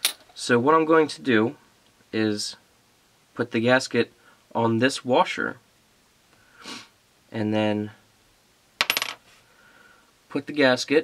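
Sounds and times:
metal washer clinking on bench: 0.0s - 0.3s, 8.8s - 9.2s.

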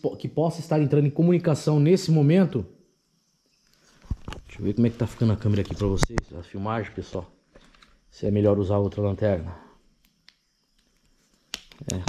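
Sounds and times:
man talking: 0.0s - 2.7s, 4.5s - 7.3s, 8.1s - 9.7s.

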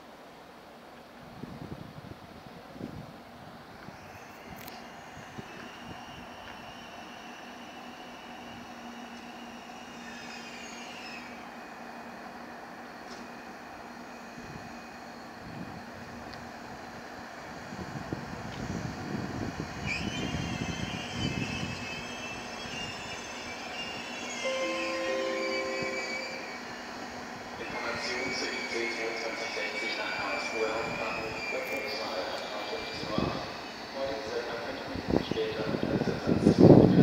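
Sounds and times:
train wheels squealing: 3.9s - 15.8s, 19.6s - 37.0s.

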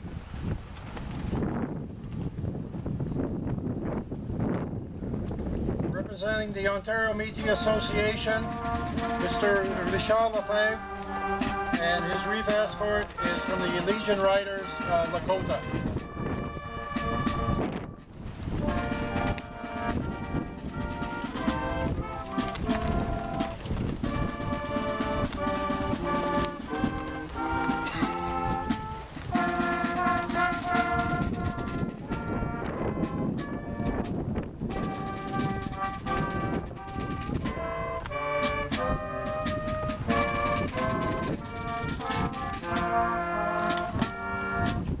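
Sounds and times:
brass instruments playing chords: 6.1s - 45.0s.

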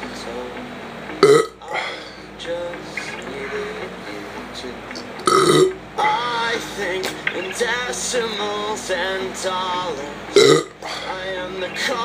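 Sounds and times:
man burping loudly: 1.2s - 2.2s, 5.1s - 7.2s, 10.3s - 11.4s.

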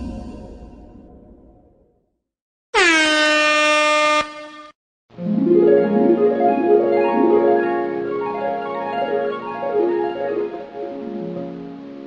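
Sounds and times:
air horn blast: 2.8s - 4.8s.

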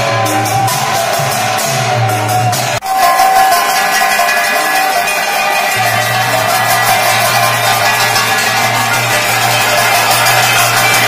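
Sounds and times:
metal bells ringing: 2.8s - 11.0s.

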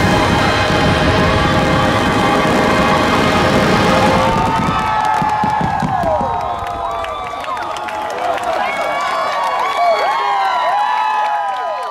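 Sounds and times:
music: 0.0s - 4.7s
firework bangs and crackles: 0.0s - 8.6s
crowd cheering and whistling: 0.0s - 11.9s.

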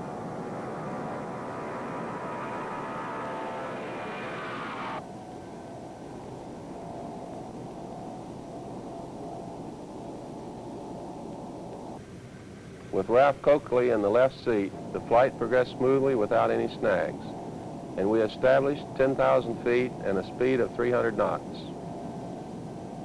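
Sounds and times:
airliner rushing in flight: 0.0s - 5.0s
jet airliner taking off: 0.0s - 5.0s.

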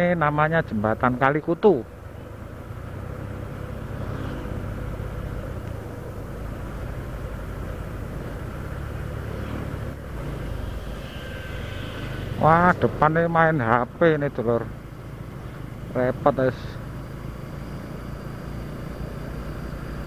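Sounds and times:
road and tyre noise: 0.0s - 20.0s
vehicle engine hum: 0.0s - 20.0s.

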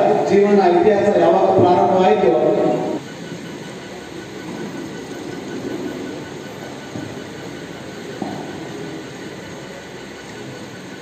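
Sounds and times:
steady rumbling: 0.0s - 11.0s.

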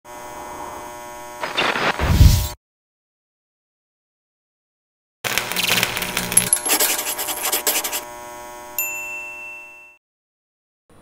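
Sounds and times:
bright bell-like ding: 8.8s - 10.0s.

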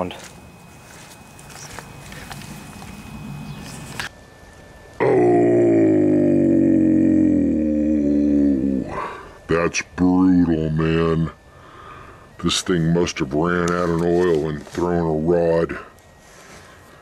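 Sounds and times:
faint outdoor background: 0.0s - 17.0s
man groaning: 5.0s - 9.3s.

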